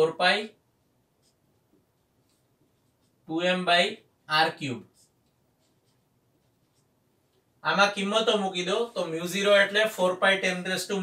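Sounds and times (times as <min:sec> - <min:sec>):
man speaking: 0:00.0 - 0:00.6, 0:03.3 - 0:05.0, 0:07.6 - 0:11.0.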